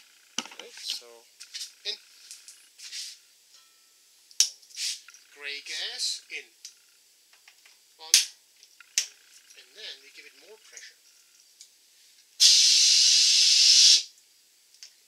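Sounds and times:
pressurized gas hissing: 0:12.4 - 0:14.1.

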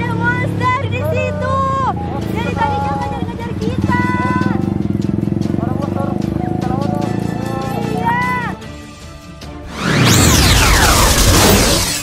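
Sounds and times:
motorcycle engine running: 0:01.6 - 0:08.4.

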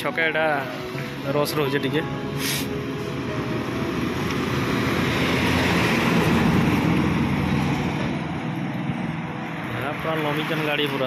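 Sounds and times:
highway traffic noise: 0:00.0 - 0:11.0.

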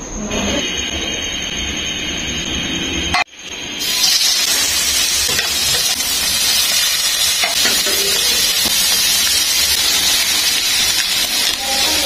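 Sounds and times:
burger patties sizzling in a pan: 0:03.8 - 0:12.0.

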